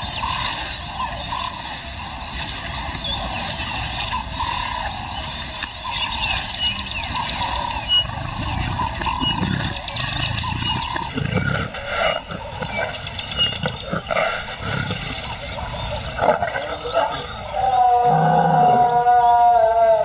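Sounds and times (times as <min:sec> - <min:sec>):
lioness low calls: 0:00.0 - 0:20.0.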